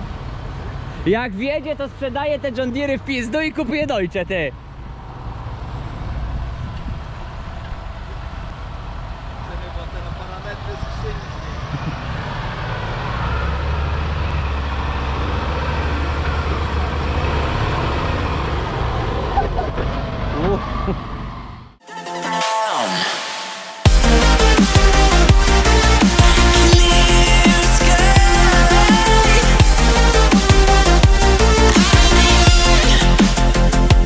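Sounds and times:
tractor diesel engine labouring: 4.6 - 21.8.

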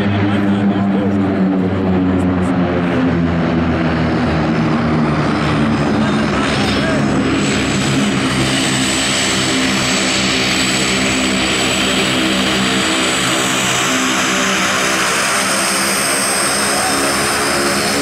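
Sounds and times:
high turbine whine: 0.0 - 18.0
propeller drone: 0.0 - 18.0.

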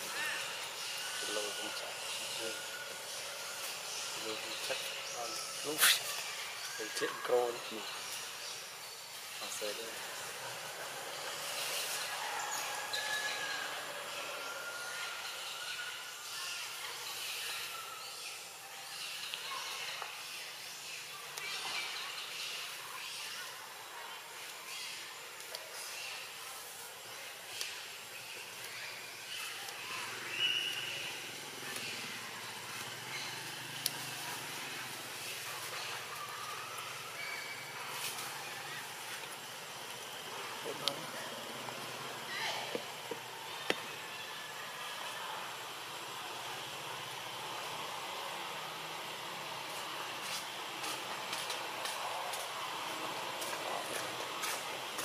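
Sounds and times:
high steady hiss: 0.0 - 55.0.

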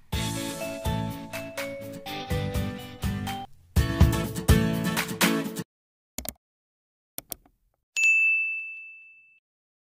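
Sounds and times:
bright bell chime: 8.0 - 9.4.

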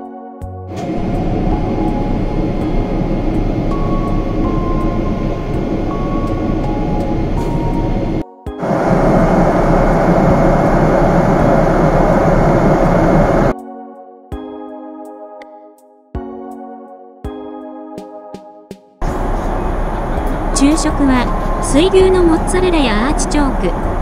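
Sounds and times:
music: 0.0 - 9.7, 13.4 - 24.0
airliner engine roar in cabin: 0.7 - 13.5, 19.0 - 24.0.

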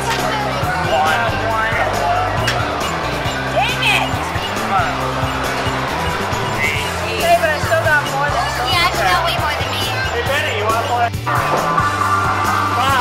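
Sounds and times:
indistinct voices: 0.0 - 13.0
electronic game music: 0.2 - 13.0.

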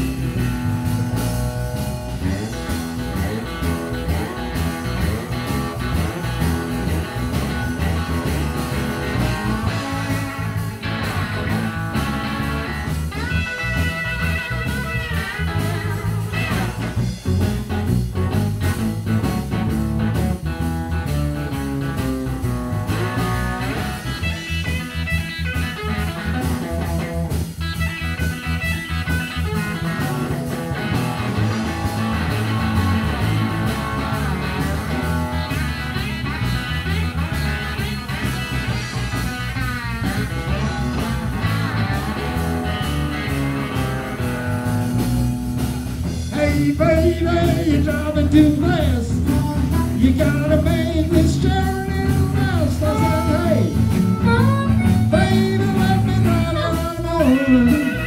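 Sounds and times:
electric guitar solo: 0.0 - 47.6, 51.4 - 58.0
bass and drum groove: 0.0 - 58.0.

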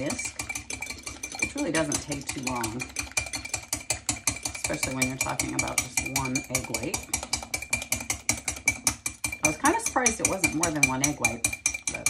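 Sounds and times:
whisk beating in glass bowl: 0.0 - 12.0.

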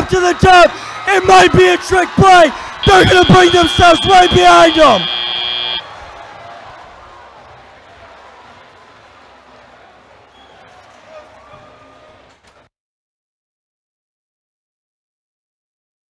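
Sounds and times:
arena crowd noise: 0.0 - 12.7
buzzer sounding: 2.8 - 5.8.

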